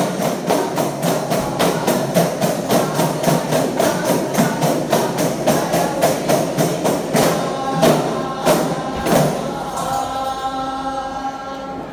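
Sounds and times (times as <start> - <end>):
frame drums beaten in rhythm: 0.0 - 11.0.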